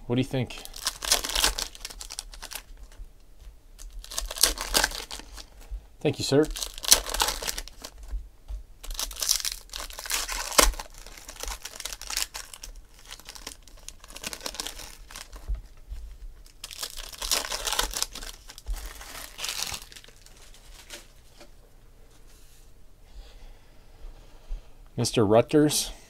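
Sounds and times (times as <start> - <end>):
foil wrappers crinkling and tearing: 0.5 - 3.0, 3.8 - 8.1, 8.8 - 21.5.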